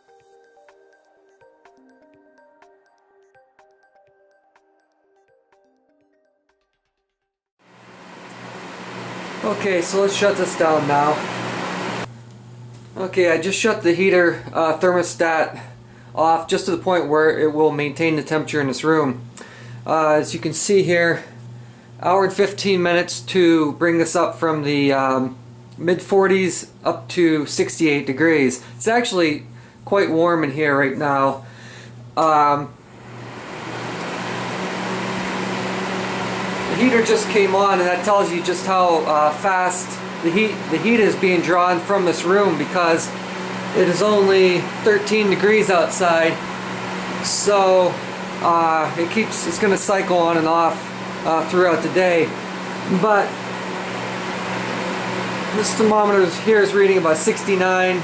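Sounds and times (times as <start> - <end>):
heater fan rushing air: 7.7 - 58.0
low electrical hum: 7.8 - 58.0.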